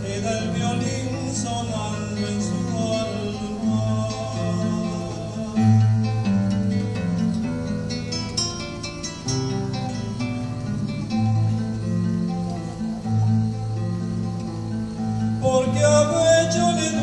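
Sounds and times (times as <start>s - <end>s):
acoustic guitar playing: 0.0s - 17.0s.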